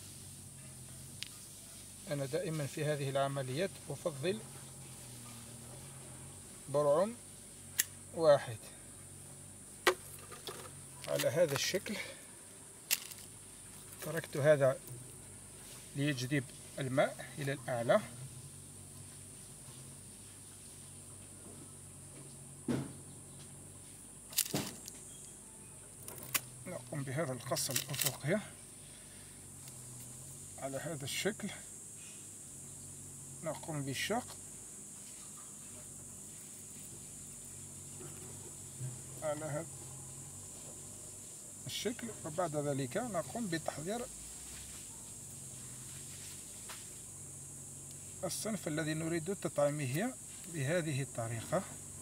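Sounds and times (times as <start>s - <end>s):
faint high-pitched hiss: 0.0s - 52.0s
insects chirring: 0.0s - 52.0s.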